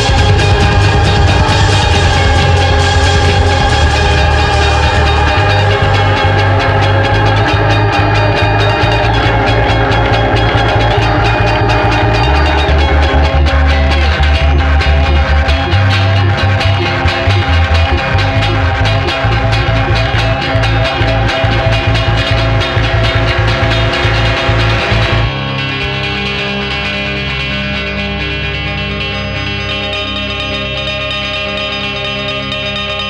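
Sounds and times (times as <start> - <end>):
drums: 0.0 - 26.2
rock band playing: 0.0 - 29.1
electric guitar: 0.0 - 33.0
pulsing bass line: 0.0 - 33.0.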